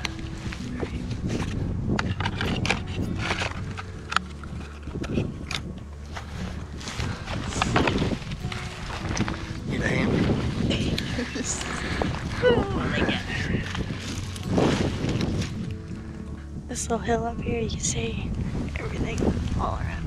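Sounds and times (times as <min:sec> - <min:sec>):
gear rustling and clicking: 0:00.0 - 0:09.6
wind rumbling on microphone: 0:00.0 - 0:20.0.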